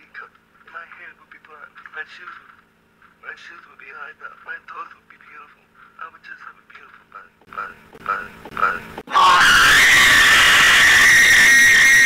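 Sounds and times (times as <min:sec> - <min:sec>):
high-pitched scream: 0:09.1 - 0:12.0.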